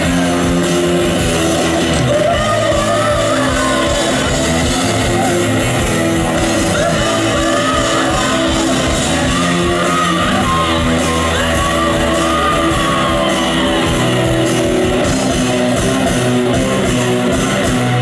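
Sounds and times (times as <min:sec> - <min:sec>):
bass guitar: 0:00.0 - 0:18.0
electric guitars: 0:00.0 - 0:18.0
live rock band playing: 0:00.0 - 0:18.0.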